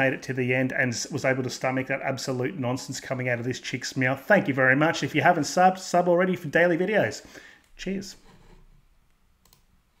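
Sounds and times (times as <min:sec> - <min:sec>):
man speaking: 0:00.0 - 0:08.3
faint click: 0:09.1 - 0:09.6.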